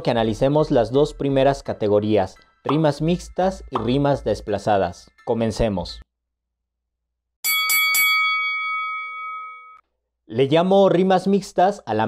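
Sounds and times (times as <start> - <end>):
bell ringing: 7.4 - 9.8.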